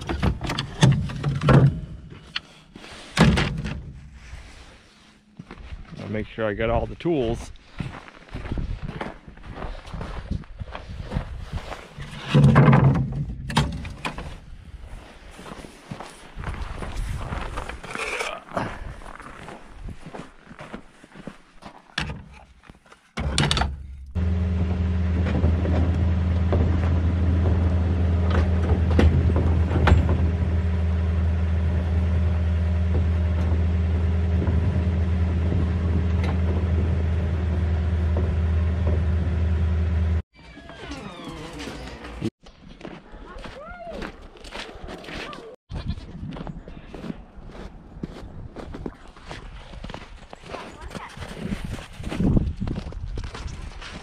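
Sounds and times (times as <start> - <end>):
knocks and clatter: 23.2 - 39.8
loud low drone: 24.2 - 40.2.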